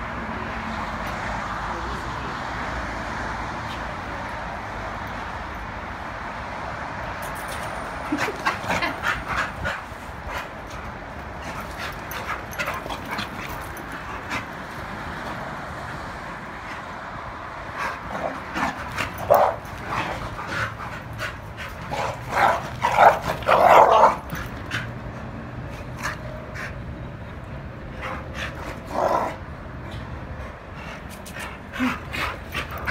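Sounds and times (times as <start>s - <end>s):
dogs play-wrestling: 7.2s - 32.9s
person laughing: 8.0s - 9.2s
dogs yipping and barking: 17.8s - 25.0s.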